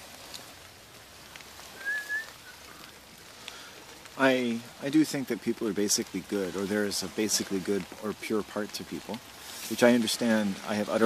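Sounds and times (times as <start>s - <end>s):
faint ticks: 0.0s - 4.3s
outdoor hiss: 0.0s - 11.0s.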